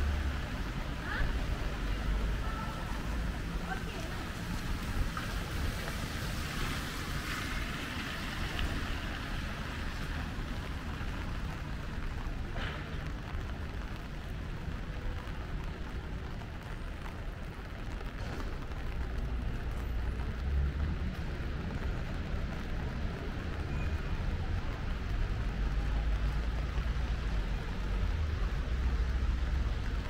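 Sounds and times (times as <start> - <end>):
city traffic rumble: 0.0 - 30.0
rain on wet pavement: 0.0 - 30.0.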